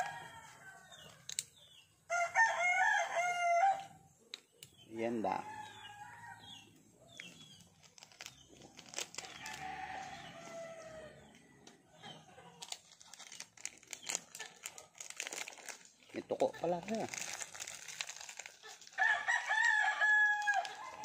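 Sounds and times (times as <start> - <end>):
rooster crowing: 2.1 - 3.9, 9.4 - 11.4, 19.0 - 21.0
plastic wrapper crinkling: 7.2 - 10.7, 12.6 - 21.0.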